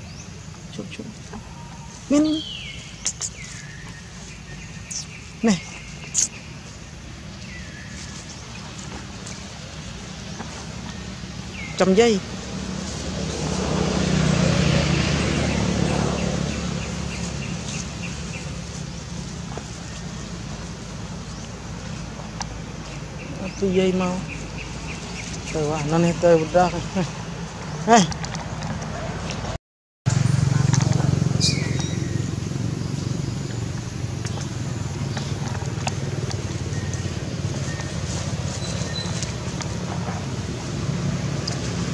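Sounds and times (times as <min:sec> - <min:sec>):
motor vehicle passing: 0:00.0 - 0:41.9.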